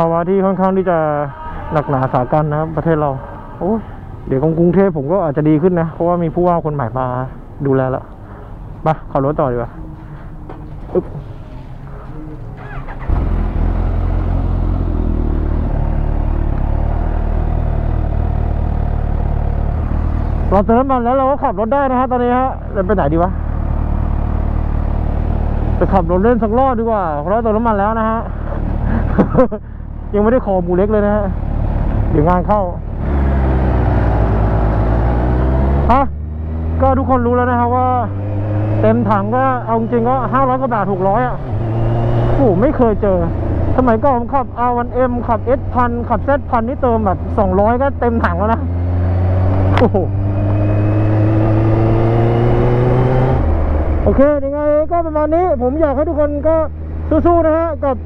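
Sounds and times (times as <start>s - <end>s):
motorcycle engine drone: 8.1s - 58.0s
person speaking: 36.8s - 41.4s.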